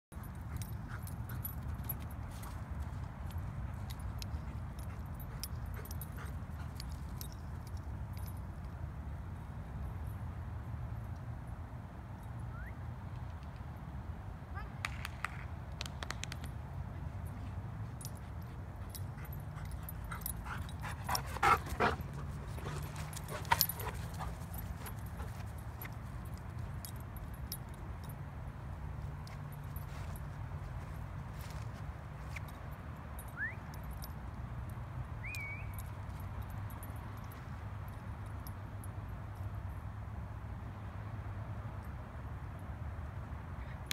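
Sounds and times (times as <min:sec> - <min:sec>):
light metallic clicks and jingles: 0:00.1 - 0:14.0, 0:15.8 - 0:43.9.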